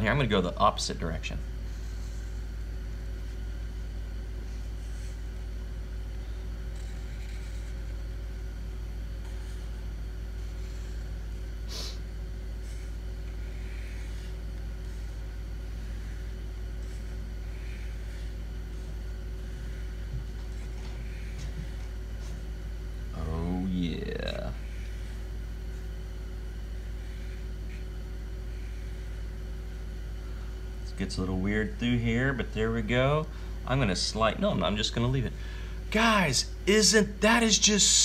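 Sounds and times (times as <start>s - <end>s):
steady low hum: 0.0s - 38.0s
marker scratching on paper: 6.6s - 8.0s, 12.6s - 22.4s.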